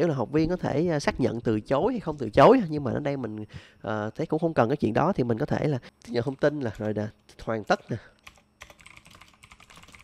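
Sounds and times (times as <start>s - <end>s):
keyboard typing clicks: 8.2s - 10.0s.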